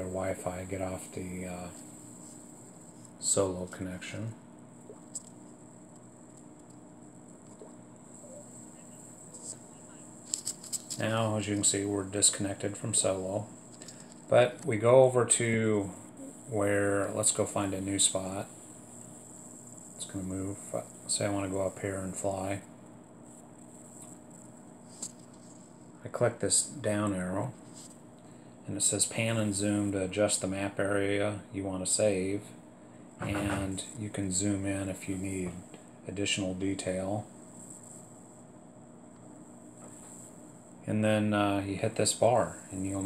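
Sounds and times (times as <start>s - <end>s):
low hum: 0.0s - 43.0s
thin high hiss: 0.0s - 43.0s.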